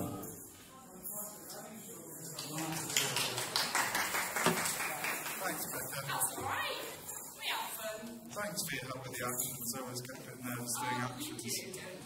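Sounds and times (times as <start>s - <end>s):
people clapping hands: 2.3s - 6.0s.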